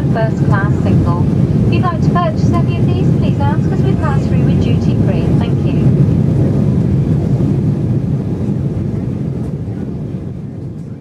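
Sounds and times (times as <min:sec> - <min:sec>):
airliner cabin noise: 0:00.0 - 0:11.0.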